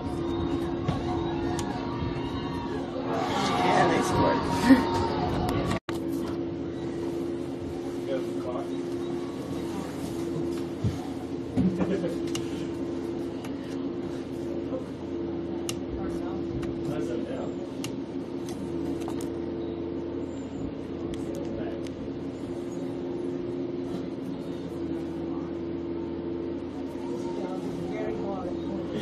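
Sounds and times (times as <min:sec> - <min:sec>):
faint distant voices: 0:00.0 - 0:29.0
steady low hum: 0:00.0 - 0:29.0.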